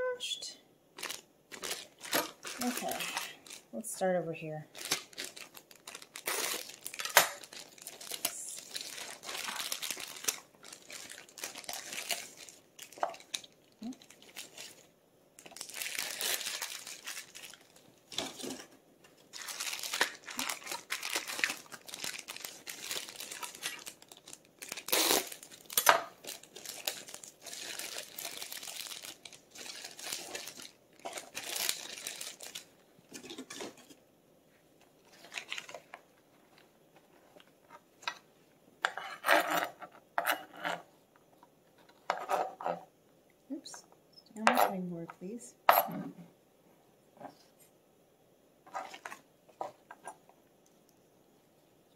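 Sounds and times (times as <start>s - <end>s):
plastic bag crinkling: 1.0s - 34.0s, 35.0s - 36.6s, 48.7s - 50.2s.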